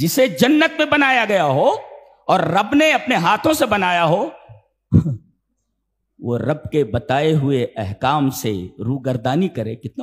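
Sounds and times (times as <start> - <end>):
man speaking: 0.0 - 5.2, 6.2 - 10.0.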